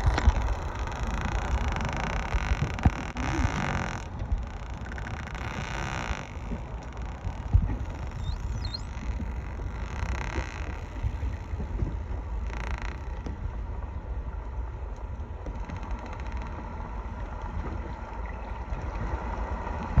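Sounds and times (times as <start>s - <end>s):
boat on open water: 0.0s - 20.0s.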